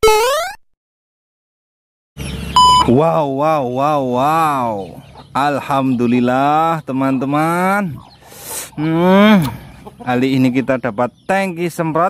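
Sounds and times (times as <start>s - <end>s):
faint outdoor background: 2.2s - 12.0s
short high electronic beep: 2.6s - 2.9s
man calling out: 2.8s - 8.0s, 8.8s - 10.8s.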